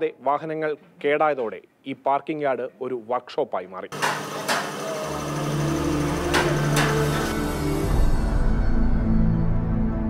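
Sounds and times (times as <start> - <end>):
workshop machinery humming: 3.9 - 8.5.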